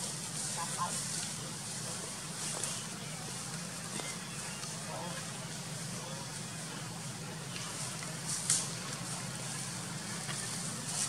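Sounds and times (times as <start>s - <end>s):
background hiss: 0.0s - 11.0s
steady low hum: 0.0s - 11.0s.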